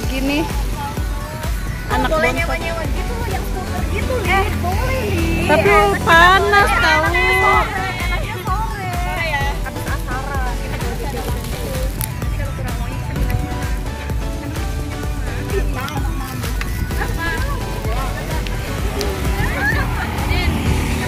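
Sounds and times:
background music: 0.0s - 21.0s
voice: 1.9s - 9.6s.

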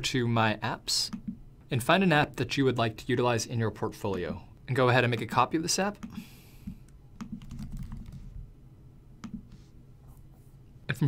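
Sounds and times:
keyboard keystrokes: 7.2s - 8.2s.

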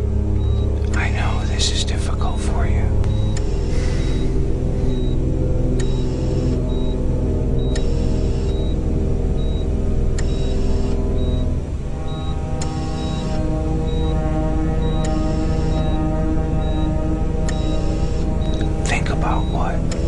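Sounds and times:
dark droning film score: 0.0s - 20.0s
sharp tick with hiss: 7.7s - 8.6s.

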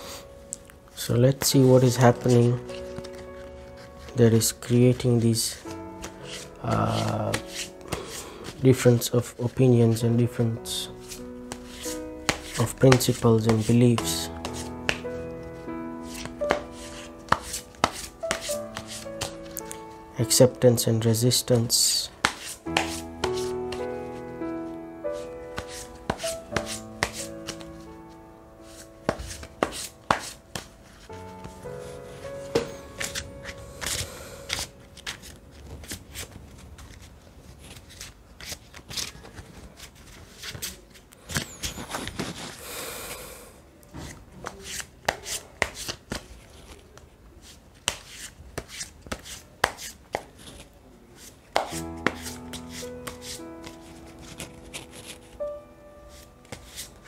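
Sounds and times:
soft background music: 0.0s - 43.3s, 44.1s - 57.0s
cards being shuffled: 1.0s - 10.0s, 10.8s - 19.9s, 21.5s - 24.3s, 25.2s - 42.6s, 44.0s - 55.5s, 56.1s - 57.0s.

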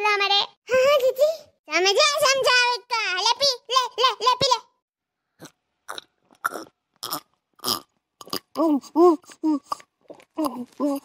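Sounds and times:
cartoon gulping: 5.4s - 8.6s, 9.2s - 11.0s.

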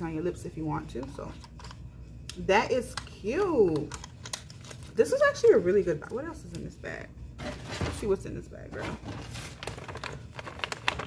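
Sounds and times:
rustling and crinkling packaging: 4.3s - 5.0s, 8.7s - 11.0s.

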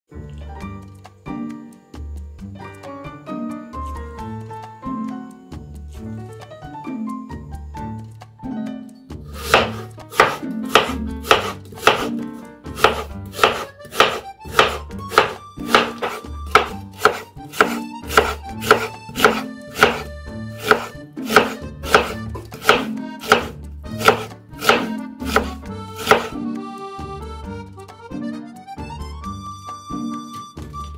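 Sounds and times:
background music: 0.1s - 30.9s
knife slicing on cutting board: 9.4s - 12.2s, 12.8s - 26.3s.

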